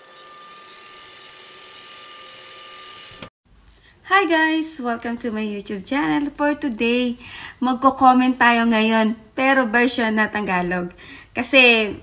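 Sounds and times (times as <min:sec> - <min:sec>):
film projector whirring: 0:00.0 - 0:03.3.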